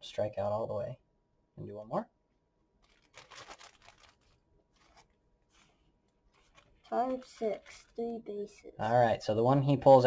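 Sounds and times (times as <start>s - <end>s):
plastic bag crinkling and rustling: 2.8s - 8.2s.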